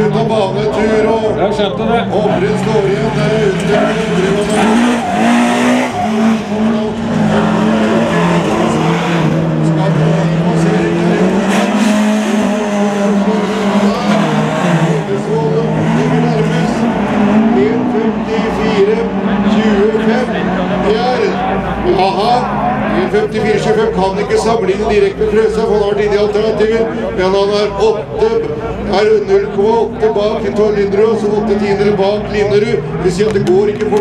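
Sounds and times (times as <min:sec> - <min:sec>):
race car engines revving: 0:00.0 - 0:34.0.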